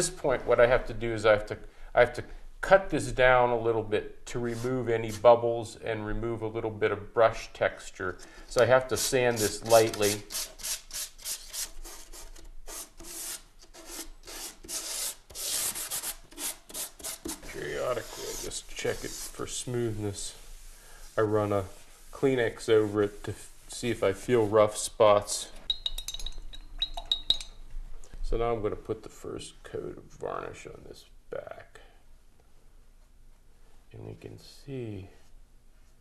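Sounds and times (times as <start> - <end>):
sanding block sanding wood: 8.8 - 24.6
brush clinking against jar rim: 25.7 - 27.6.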